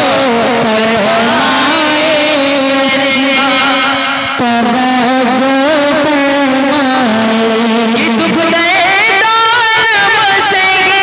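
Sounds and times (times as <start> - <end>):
man singing over a pa system: 0.0 - 11.0.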